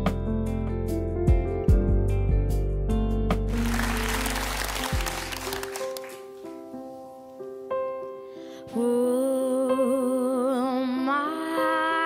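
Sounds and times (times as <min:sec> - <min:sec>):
audience applause: 0:03.5 - 0:06.4.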